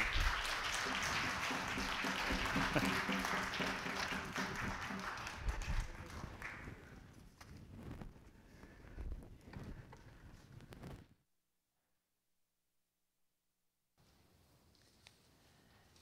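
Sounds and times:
congregation applauding: 0.0s - 7.2s.

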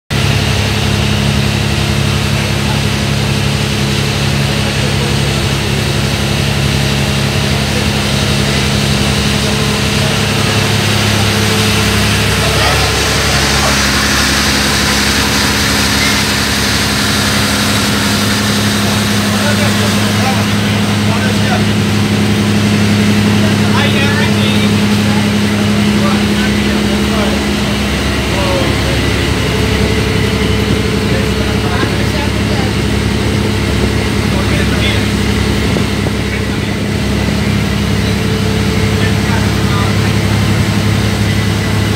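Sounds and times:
boat engine droning: 0.1s - 41.9s.

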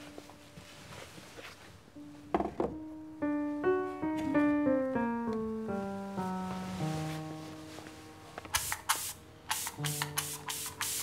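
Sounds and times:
soft sustained music: 0.0s - 10.8s
spray bottle spritzing: 8.5s - 11.0s.

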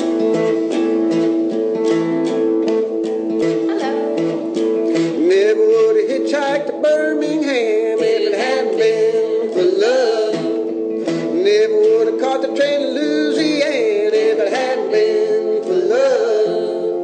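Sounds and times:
guitar strumming: 0.0s - 17.0s
sliding lead melody: 0.0s - 17.0s.

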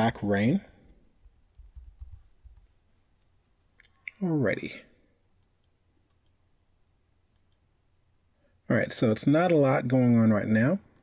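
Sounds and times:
computer mouse clicks: 5.4s - 6.4s, 7.3s - 7.7s.

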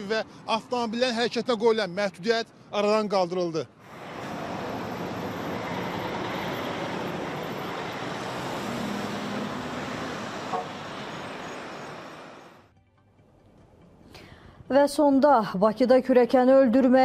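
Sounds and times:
highway traffic rushing: 0.0s - 12.7s.

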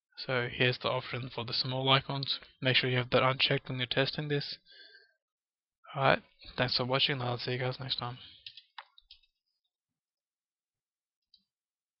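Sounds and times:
computer mouse clicks: 8.4s - 9.3s.

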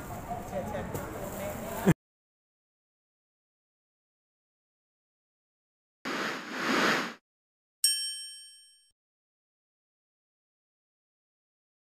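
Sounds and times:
short burst of noise: 6.1s - 7.2s
bell-like ding: 7.8s - 8.9s.

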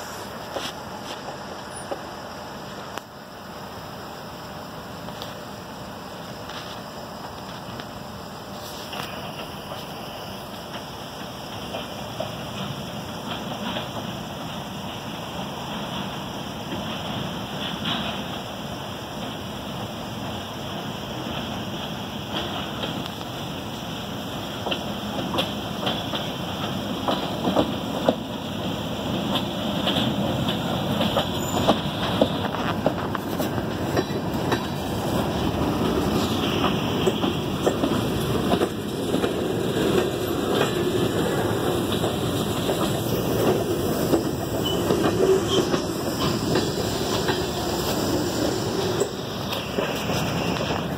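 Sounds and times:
train wheels rolling on rails: 0.0s - 50.9s
wheels clicking and clacking: 10.7s - 15.0s, 15.7s - 18.5s, 24.5s - 50.9s.

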